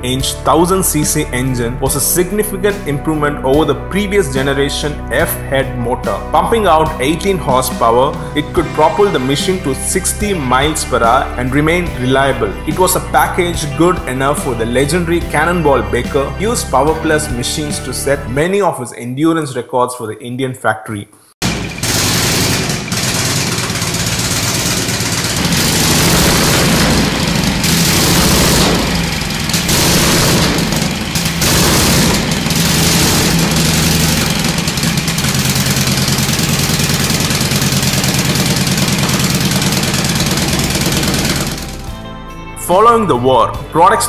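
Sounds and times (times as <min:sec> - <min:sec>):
motorcycle engine idling with clatter: 0:21.4 - 0:41.9.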